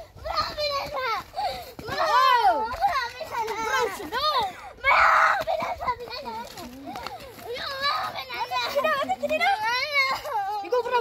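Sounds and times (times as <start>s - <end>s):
children shouting and calling out: 0.0s - 11.0s.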